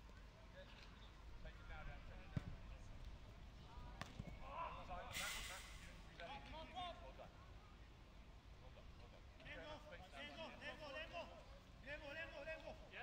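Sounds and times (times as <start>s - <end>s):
brief rushing hiss: 5.1s - 6.0s.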